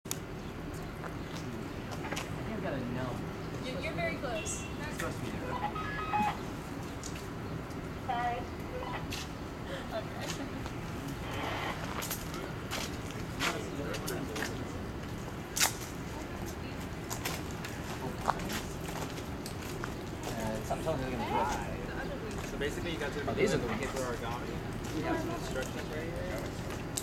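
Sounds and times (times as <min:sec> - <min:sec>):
people talking indistinctly: 0:01.4 - 0:06.6, 0:08.0 - 0:10.6, 0:11.2 - 0:18.7, 0:20.0 - 0:26.8.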